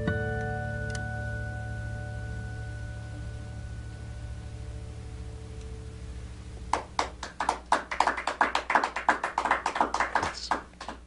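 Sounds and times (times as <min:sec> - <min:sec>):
small audience applauding: 0:06.7 - 0:11.0.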